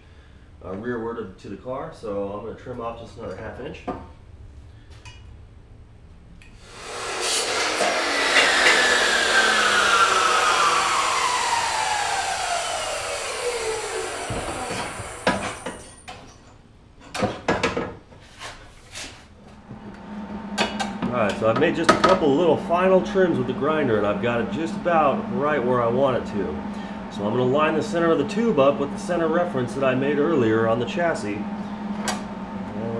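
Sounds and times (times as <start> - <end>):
grinder wheel whining down: 6.6 - 16.1, 19.6 - 32.9
loud grinder grinding: 6.6 - 16.1, 19.7 - 32.9.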